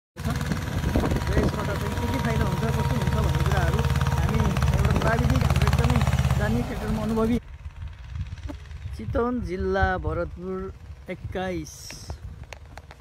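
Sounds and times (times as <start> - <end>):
tractor diesel engine running: 0.2 - 13.0.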